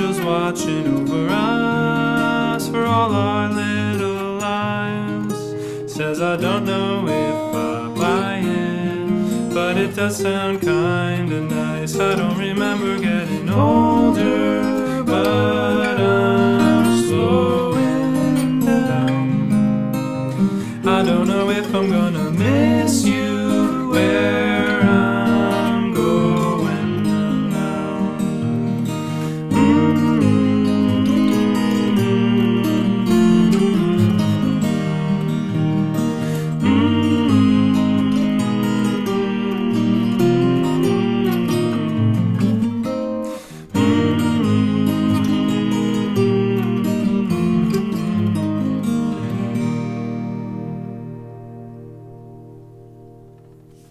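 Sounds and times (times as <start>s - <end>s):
fingerpicked acoustic guitars: 0.0s - 53.9s.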